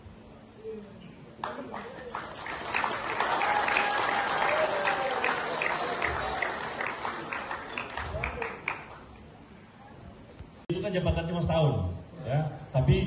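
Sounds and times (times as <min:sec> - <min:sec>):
group applauding: 0:01.4 - 0:09.1.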